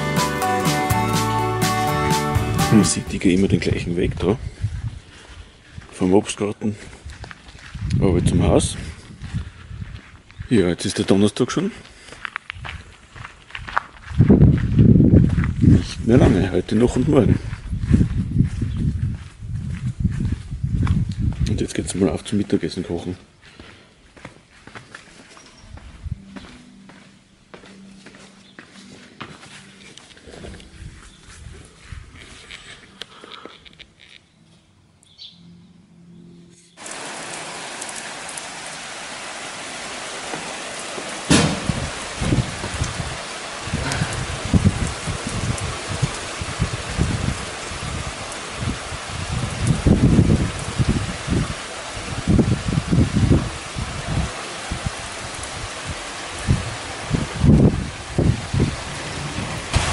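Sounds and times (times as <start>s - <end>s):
heavy rain pouring: 0.0s - 3.4s, 36.8s - 59.9s
sharp thunderclap: 41.3s - 42.7s, 58.6s - 59.9s
low rumbles of thunder: 56.4s - 59.9s.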